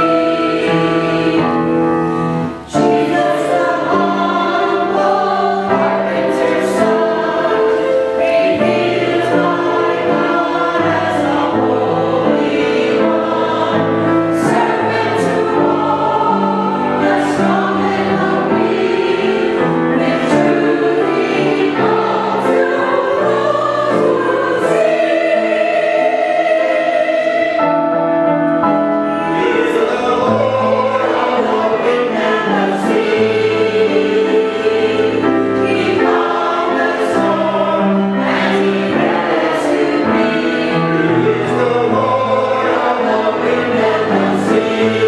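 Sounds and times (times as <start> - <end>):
choir singing in harmony: 0.0 - 45.0.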